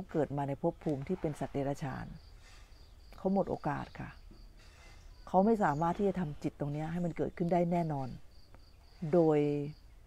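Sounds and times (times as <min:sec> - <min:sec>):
woman speaking: 0:00.0 - 0:02.2, 0:03.2 - 0:04.2, 0:05.3 - 0:08.2, 0:09.0 - 0:09.8
insect chirping trill: 0:00.4 - 0:10.0.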